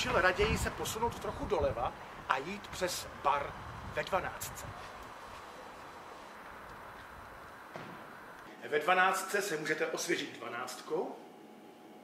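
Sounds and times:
low hum of traffic: 0.0s - 8.6s.

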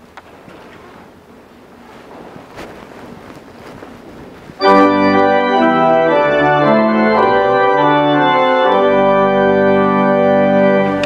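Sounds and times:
rustling and shuffling: 0.0s - 9.1s.

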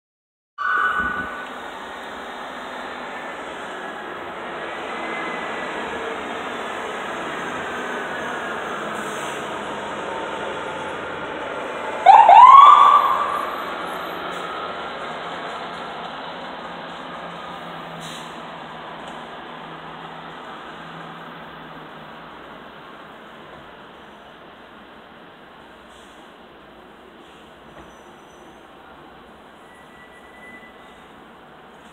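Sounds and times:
emergency vehicle siren: 0.6s - 2.2s, 10.0s - 15.4s
street noise: 0.6s - 31.9s.

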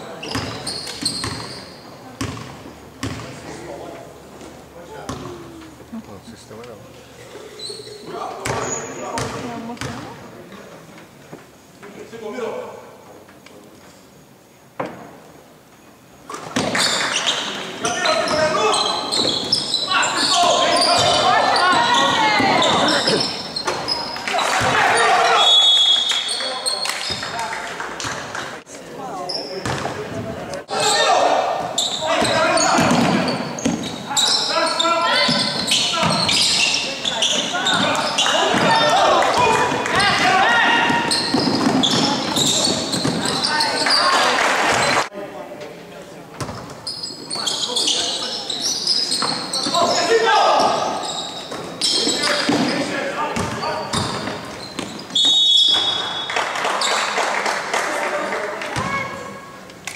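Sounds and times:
voices calling out in gym: 0.0s - 13.3s, 16.2s - 59.9s.

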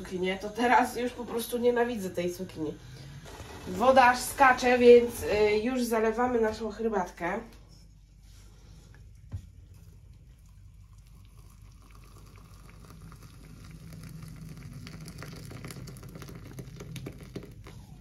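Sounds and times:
water pouring into a mug: 9.7s - 18.0s.

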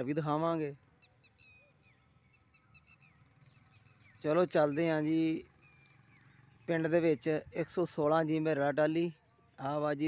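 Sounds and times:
faint bird chirps: 0.0s - 8.1s, 9.0s - 10.0s.

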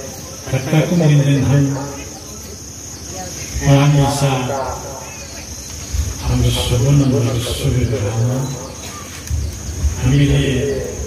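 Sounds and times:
man speaking into a microphone: 0.0s - 2.3s, 3.5s - 8.8s, 9.9s - 11.0s.

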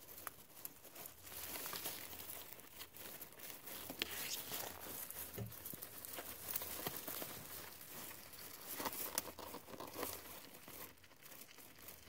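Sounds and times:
guinea pigs chewing and crunching: 0.0s - 12.0s.

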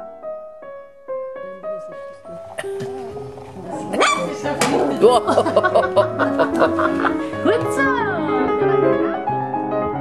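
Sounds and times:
background music: 0.0s - 10.0s
puppies yipping: 2.6s - 5.1s
puppy yelps: 3.9s - 4.4s.

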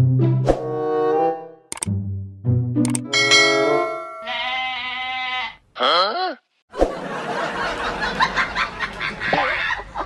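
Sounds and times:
bell-like ringing tones: 3.1s - 4.8s
goat bleating: 4.2s - 6.2s.

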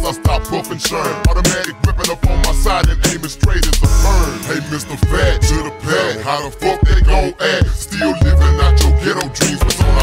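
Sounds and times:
beat with heavy pulsing bass: 0.0s - 5.7s, 6.6s - 10.0s
slowed low-pitched rapping: 0.0s - 10.0s.

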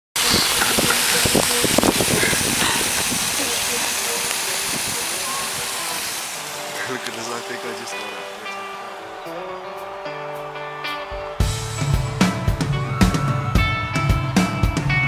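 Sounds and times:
wind buffeting microphone: 0.2s - 6.2s
heavy rain hiss: 0.2s - 9.3s.

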